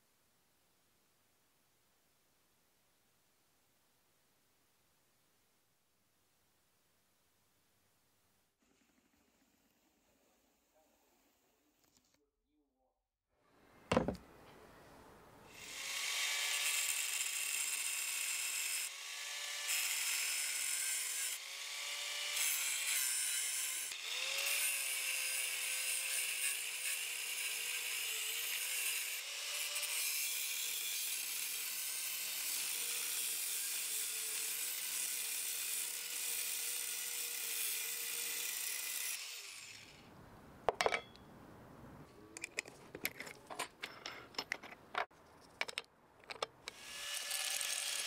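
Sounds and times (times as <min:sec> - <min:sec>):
angle grinder grinding metal: 0:15.6 - 0:40.0, 0:46.7 - 0:48.0.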